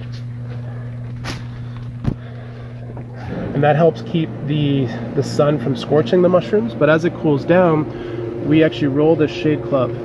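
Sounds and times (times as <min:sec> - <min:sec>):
ventilation fans humming: 0:00.0 - 0:10.0.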